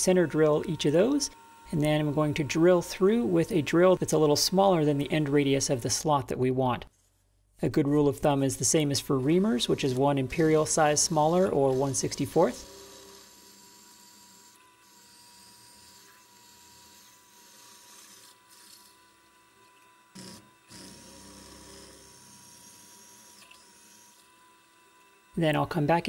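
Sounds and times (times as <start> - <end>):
drill boring through steel: 0.0 - 5.6, 9.3 - 25.4
mill spindle whine: 0.0 - 5.8, 8.9 - 25.8.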